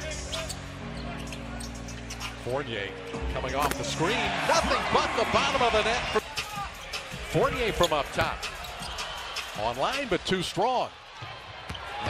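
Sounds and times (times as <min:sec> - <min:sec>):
arena music low notes: 0:00.0 - 0:08.6
crowd noise: 0:00.0 - 0:12.0.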